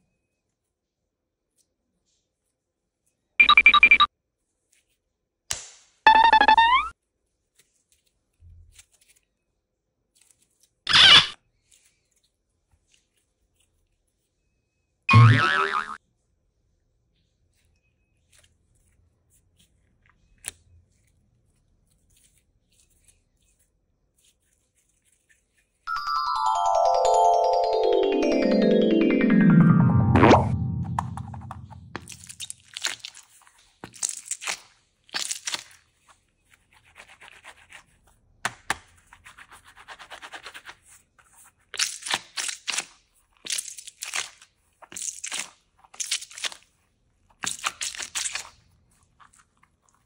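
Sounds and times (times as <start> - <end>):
springy sound effect: 6.1 - 6.9, 15.1 - 16.0, 25.9 - 32.2
cartoon boing: 6.3 - 6.9, 15.1 - 16.0
musical run: 25.9 - 32.0.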